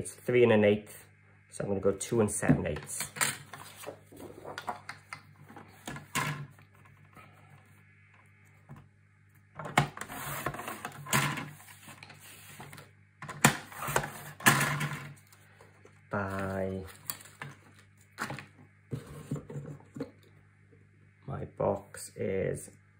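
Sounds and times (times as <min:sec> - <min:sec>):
paper rustling and tapping: 0:03.5 - 0:05.0.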